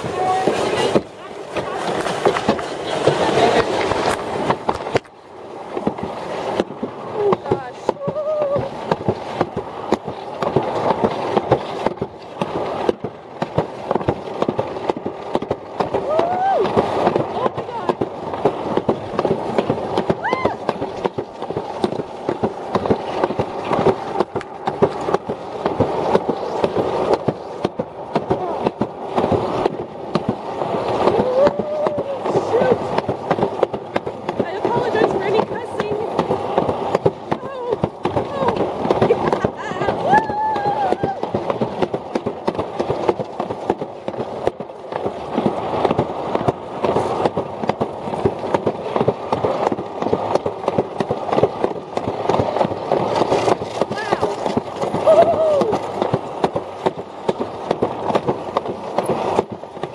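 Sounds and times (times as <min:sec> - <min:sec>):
sled rattling down a track: 0:00.0 - 0:59.9.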